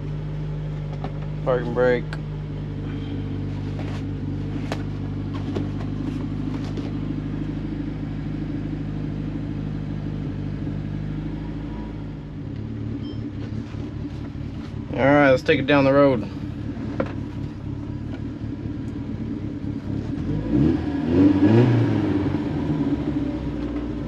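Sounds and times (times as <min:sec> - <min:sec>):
car engine idling: 0:00.0 - 0:24.0.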